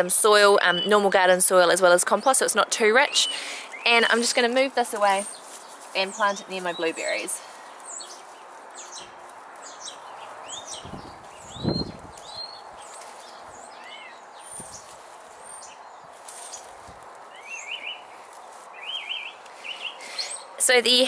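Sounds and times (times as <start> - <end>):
faint outdoor background: 0.0 - 21.0
small birds chirping: 0.6 - 21.0.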